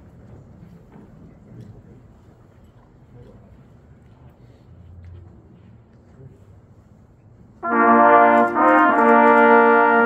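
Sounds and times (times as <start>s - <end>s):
faint room noise in hall: 0.0s - 10.0s.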